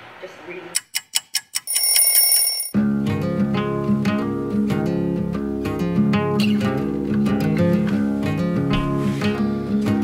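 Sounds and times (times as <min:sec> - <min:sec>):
alarm clock beeping and ringing: 0:01.6 - 0:02.7
strummed acoustic guitar music: 0:02.8 - 0:10.0.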